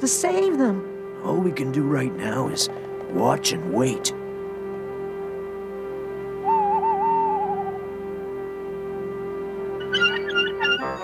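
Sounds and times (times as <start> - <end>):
sustained synthesizer chord: 0.0 - 11.0
wavering theremin-like lead tone: 6.4 - 8.0, 9.7 - 11.0.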